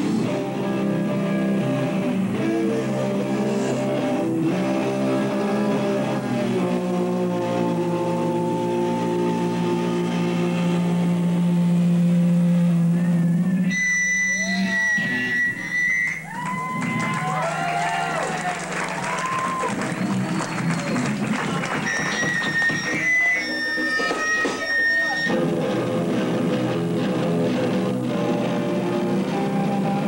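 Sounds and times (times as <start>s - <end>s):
high steady tone: 0.0s - 16.3s
swooping sliding guitar pitches: 0.0s - 18.3s, 18.9s - 30.0s
live rock band: 0.0s - 30.0s.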